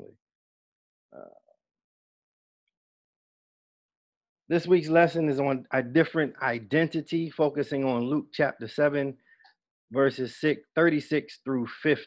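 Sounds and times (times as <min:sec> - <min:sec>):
man saying uh: 0:04.5 - 0:09.1, 0:10.0 - 0:12.0.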